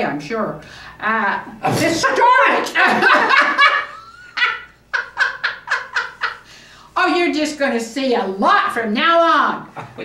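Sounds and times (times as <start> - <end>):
woman laughing: 2.8 - 6.5.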